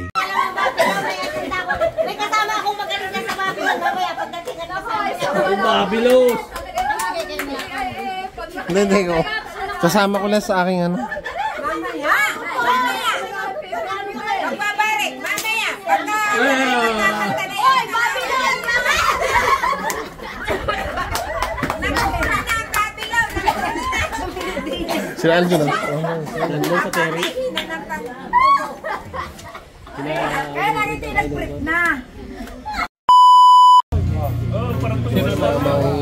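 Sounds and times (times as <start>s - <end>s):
group of people talking excitedly: 0.0s - 32.9s, 34.1s - 36.0s
high-pitched test-tone beep: 33.1s - 33.8s
music with voices: 34.0s - 36.0s.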